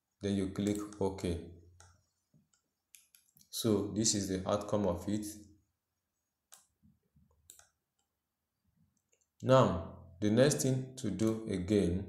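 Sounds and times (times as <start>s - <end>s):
computer mouse clicks: 0.6s - 1.0s, 1.8s - 3.5s, 6.5s - 8.2s, 8.9s - 9.5s, 11.2s - 11.4s.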